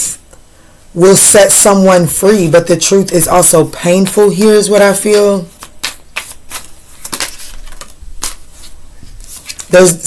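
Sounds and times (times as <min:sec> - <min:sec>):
soft card rustling: 0:04.9 - 0:10.0
cards clicking while shuffled: 0:05.1 - 0:08.7.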